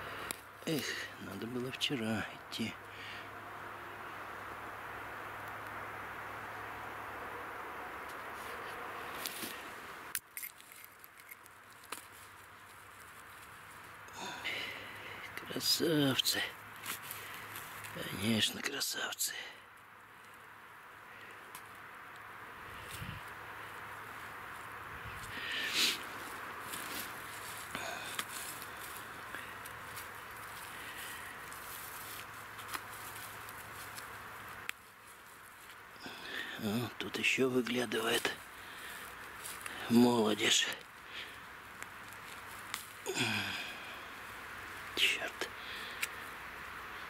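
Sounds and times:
dry grass and leaves rustling: 0.0s - 47.0s
twigs clicking and snapping: 5.4s - 5.8s, 8.0s - 15.5s, 16.5s - 18.5s, 19.7s - 20.6s, 21.2s - 36.6s, 37.6s - 46.9s
rustling scrape in dry grass: 8.3s - 9.8s, 16.8s - 18.0s, 22.6s - 36.0s
soft rustling: 10.4s - 14.1s, 16.6s - 18.0s, 22.6s - 36.0s
steady hiss: 11.7s - 47.0s.

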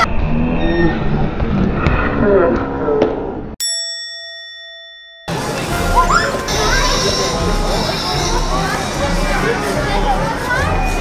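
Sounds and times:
bell-like ding: 3.6s - 5.4s.

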